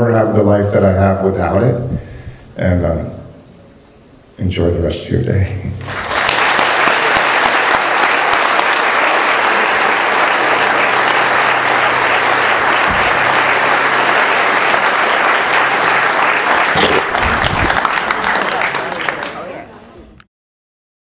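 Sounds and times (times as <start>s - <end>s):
audience applauding: 5.8s - 19.9s.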